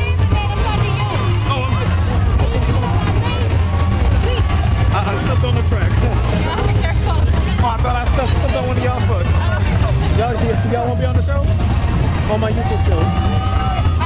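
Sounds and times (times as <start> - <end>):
crowd talking: 0.0 - 14.0
steady low rumble: 0.0 - 14.0.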